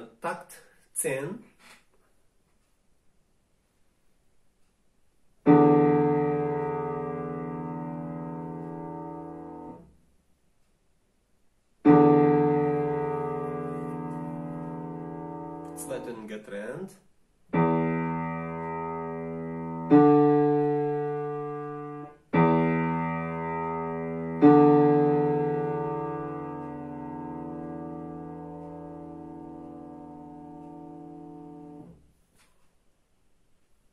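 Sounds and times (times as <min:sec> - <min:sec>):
digital piano chords: 0:05.4 - 0:09.9, 0:11.8 - 0:16.9, 0:17.5 - 0:32.0.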